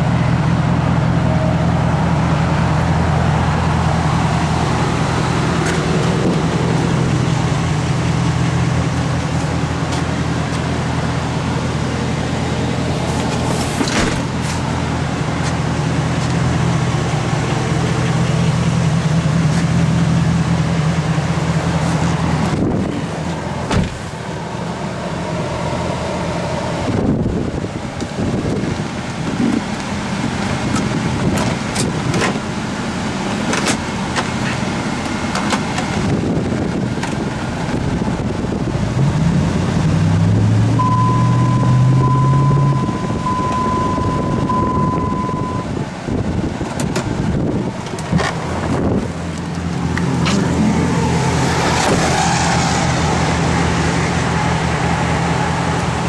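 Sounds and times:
truck engine idling: 0:00.0 - 0:56.0
pulsing electronic chime: 0:40.8 - 0:45.7.

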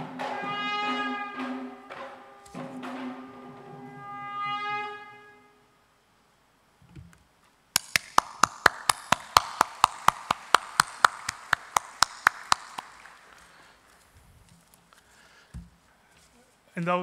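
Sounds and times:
audience applauding: 0:07.8 - 0:14.0
loud close hand clapping: 0:07.8 - 0:14.0.

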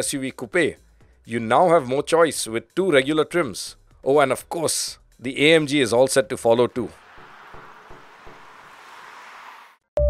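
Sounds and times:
tyres hissing on highway: 0:06.7 - 0:09.8.

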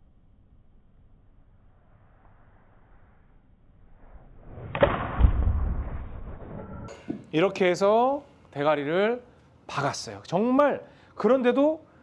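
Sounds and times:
deep thud with rumble: 0:04.7 - 0:06.3.

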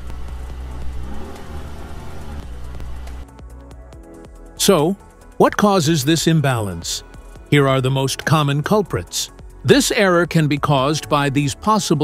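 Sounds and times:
car engine rumbling: 0:00.0 - 0:03.3
background music: 0:00.0 - 0:12.0.

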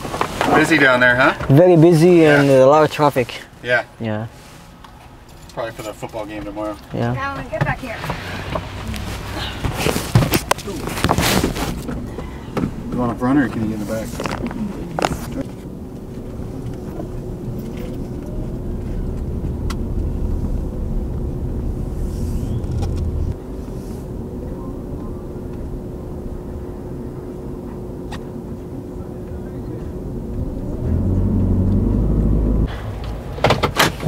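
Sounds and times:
road and engine rumble: 0:00.0 - 0:34.0.

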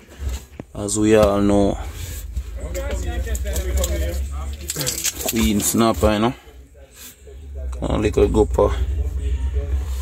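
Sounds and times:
steady low rumble: 0:00.1 - 0:10.0
fish and ice clicking: 0:03.6 - 0:06.0.

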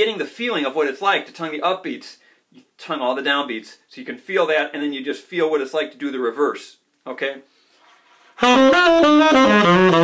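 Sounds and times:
tenor saxophone jazz line: 0:08.2 - 0:10.0.

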